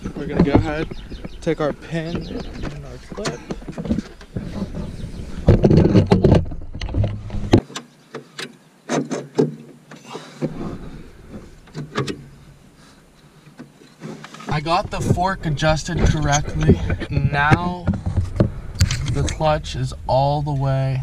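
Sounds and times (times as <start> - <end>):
heavy rumble of body movement: 0.0 - 7.6, 10.4 - 13.4, 14.5 - 21.0
sharp clicks and metal knocks: 11.3 - 12.3.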